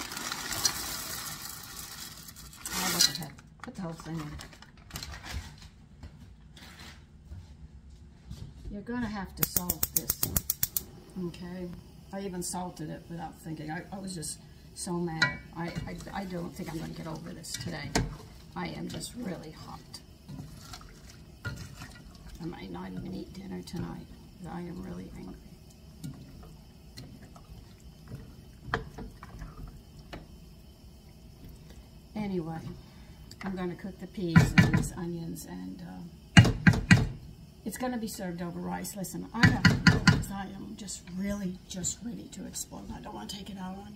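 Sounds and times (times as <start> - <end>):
plastic bag crinkling: 0.0 - 5.6
spoon knocking against pot: 15.2 - 15.8, 36.4 - 37.2, 39.4 - 40.3.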